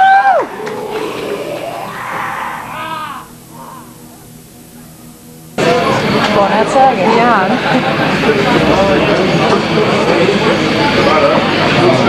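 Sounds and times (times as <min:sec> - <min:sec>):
people shouting: 0:00.0 - 0:04.0
amplifier hum: 0:00.0 - 0:11.7
crowd noise: 0:00.0 - 0:12.0.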